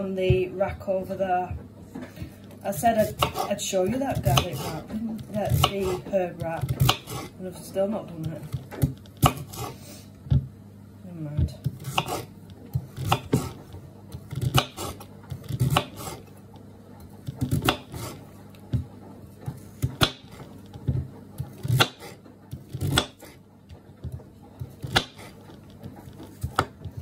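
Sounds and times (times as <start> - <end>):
knife striking chopping board: 5.3 - 7.3, 11.8 - 12.3, 13.0 - 13.6, 14.3 - 16.2, 19.8 - 23.4, 24.6 - 25.4.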